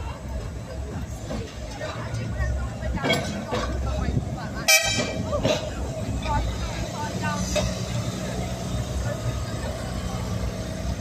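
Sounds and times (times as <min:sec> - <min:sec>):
tram rumbling on track: 0:00.0 - 0:11.0
voices: 0:00.0 - 0:11.0.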